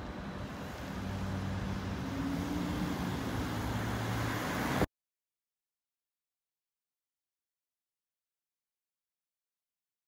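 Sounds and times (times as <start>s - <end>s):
street noise: 0.0s - 4.9s
vehicle engine hum: 0.0s - 4.9s.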